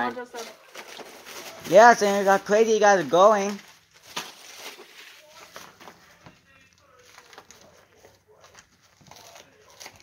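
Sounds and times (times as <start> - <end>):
plastic cling wrap crinkling: 0.0 - 10.0.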